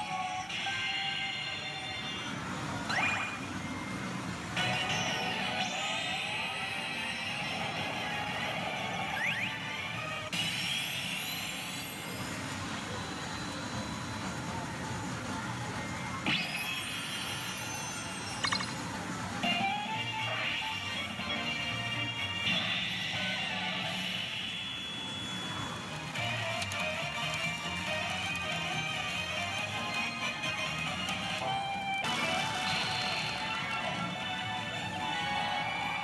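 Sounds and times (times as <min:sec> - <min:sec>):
pachinko machine music and effects: 0:00.0 - 0:36.0.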